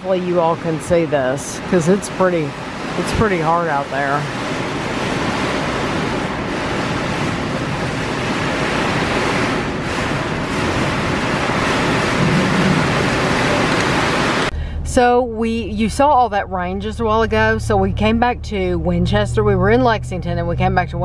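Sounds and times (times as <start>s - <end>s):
heavy rain pouring: 0.0s - 14.6s.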